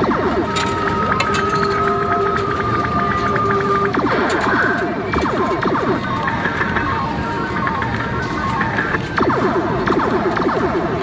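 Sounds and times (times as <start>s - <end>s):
electronic game music: 0.0s - 11.0s
falling-pitch blips: 0.0s - 11.0s
held electronic tones: 0.0s - 11.0s.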